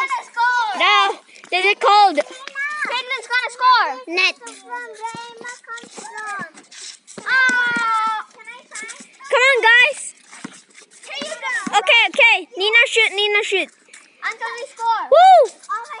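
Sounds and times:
children calling and shouting: 0:00.0 - 0:16.0.

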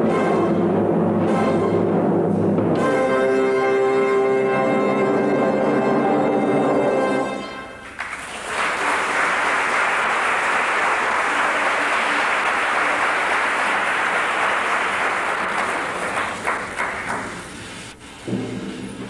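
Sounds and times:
audience applauding: 0:07.8 - 0:17.9.

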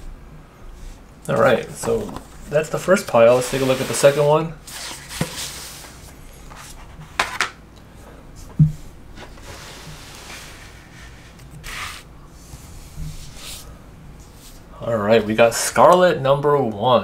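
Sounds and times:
paper rustling and sliding: 0:01.4 - 0:07.4, 0:09.2 - 0:14.7.

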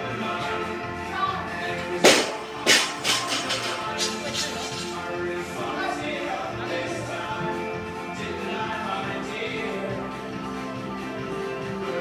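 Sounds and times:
background music: 0:00.0 - 0:12.0
barbell dropped on gym floor: 0:02.0 - 0:03.8.

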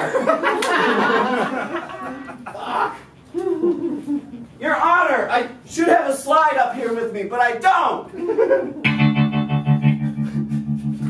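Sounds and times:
electric guitar chord with tremolo: 0:08.9 - 0:11.0.

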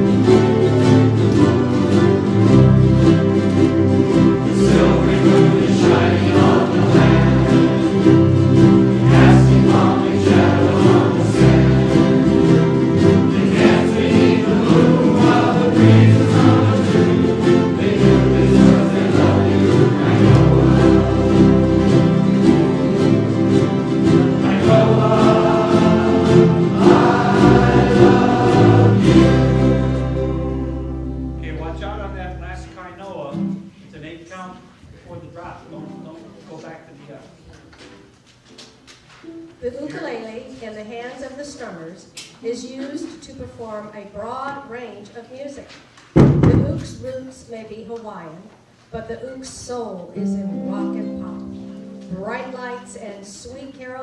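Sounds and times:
ukulele group strumming: 0:00.0 - 0:34.4, 0:35.1 - 0:40.7, 0:50.1 - 0:54.0
group singing in unison: 0:03.7 - 0:31.4.

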